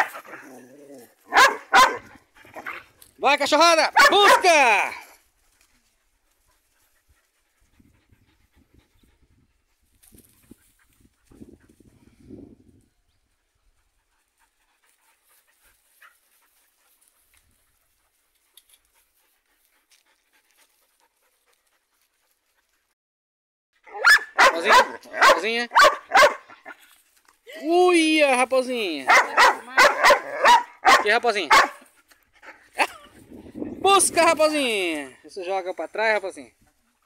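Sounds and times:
puppies panting: 5.1s - 12.1s, 13.3s - 23.0s, 28.6s - 37.0s.

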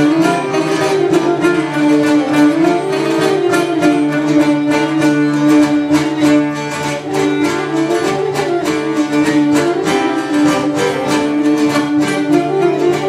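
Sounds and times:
bowed lyra melody: 0.0s - 13.0s
plucked lute accompaniment: 0.0s - 13.0s.

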